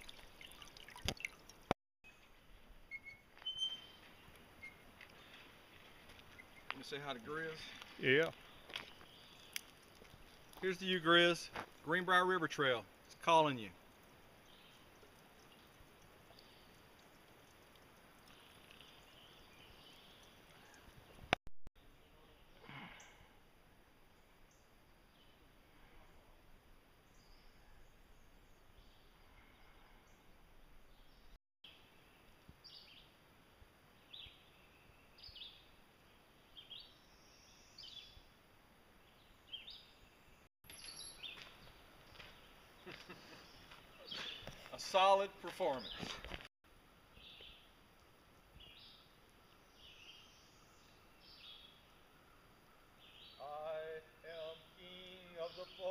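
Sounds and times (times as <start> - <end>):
high bird chirps: 2.9 - 5.4, 40.7 - 41.5.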